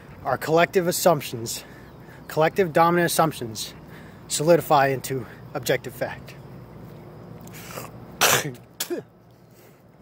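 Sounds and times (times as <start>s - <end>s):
man clearing throat: 8.2s - 9.1s.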